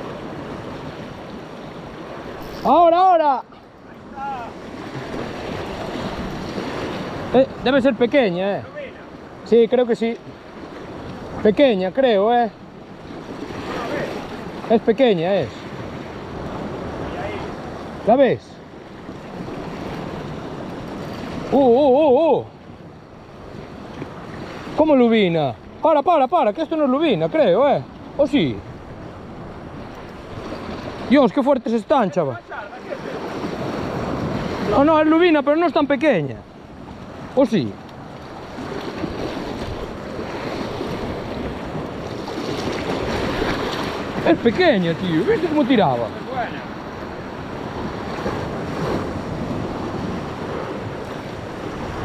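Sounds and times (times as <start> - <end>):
surf washing against rocks: 0.0 - 52.0.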